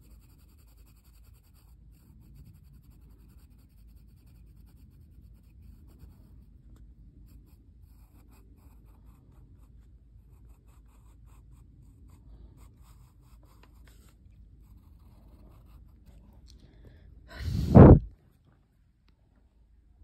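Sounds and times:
pencil scratching on paper: 0:00.0 - 0:16.4
low steady hum: 0:00.1 - 0:20.0.

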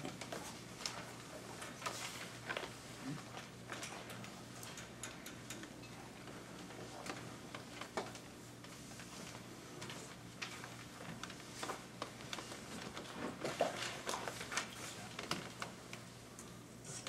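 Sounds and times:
small clicks and rustles: 0:00.0 - 0:17.0.

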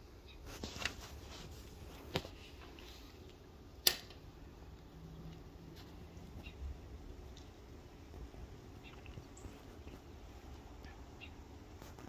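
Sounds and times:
sharp clicks: 0:03.8 - 0:04.2.

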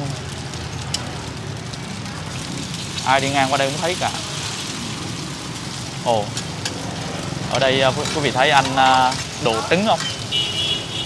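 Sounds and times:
cake cubes sizzling in hot oil: 0:00.0 - 0:11.0.

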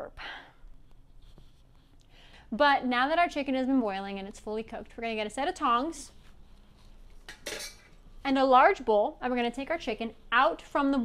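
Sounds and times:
kitchen tongs clinking: 0:07.3 - 0:08.0.

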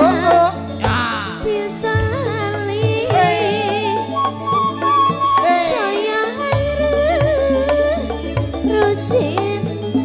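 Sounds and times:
keyboard and drum accompaniment: 0:00.0 - 0:10.0
woman singing into microphone: 0:00.0 - 0:10.0.

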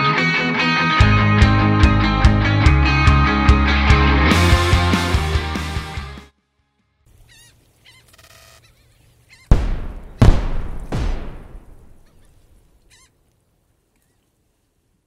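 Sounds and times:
warbling honk-like calls: 0:07.2 - 0:09.5, 0:12.0 - 0:13.2
heavy booming impact hits: 0:09.5 - 0:12.0.

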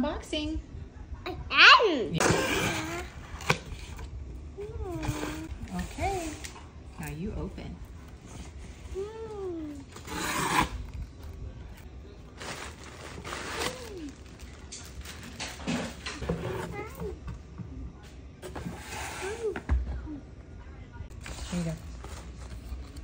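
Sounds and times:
plastic packaging crinkling: 0:12.2 - 0:16.2.

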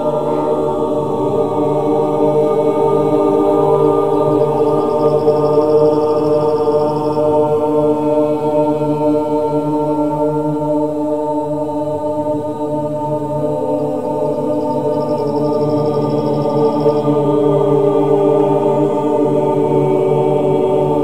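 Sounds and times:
mixed choir chanting: 0:00.0 - 0:21.0.

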